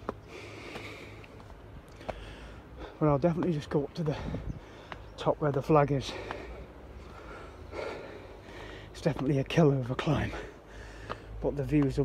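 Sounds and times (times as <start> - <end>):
man breathing hard: 0.1 - 3.1, 4.1 - 5.1, 6.0 - 9.0, 10.2 - 11.4.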